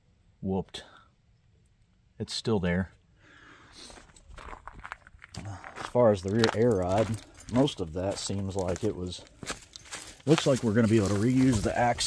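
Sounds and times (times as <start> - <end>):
footsteps on gravel and dry leaves: 3.8 - 12.0.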